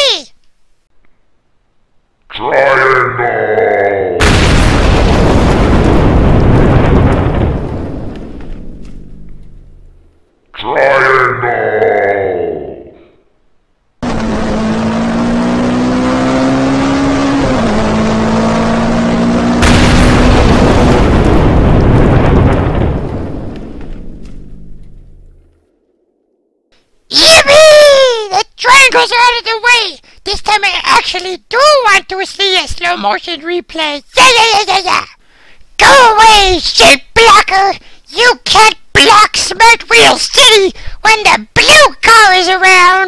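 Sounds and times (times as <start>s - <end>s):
crash and rumble sound effect: 4.2s - 10.0s, 19.6s - 25.5s.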